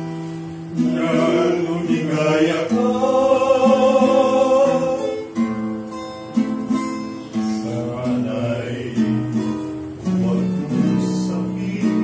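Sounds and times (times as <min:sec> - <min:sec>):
male vocal quartet singing: 0:00.7 - 0:05.4, 0:07.3 - 0:12.0.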